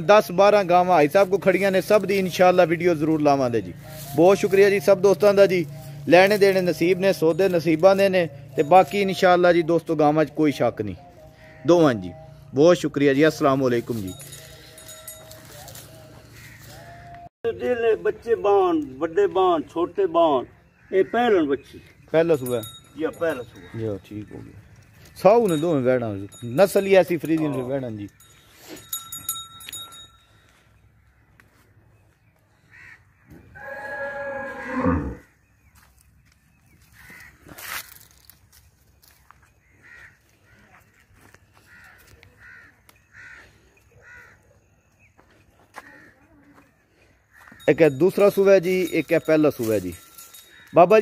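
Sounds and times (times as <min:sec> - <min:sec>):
cow mooing: 0:33.5 - 0:35.3.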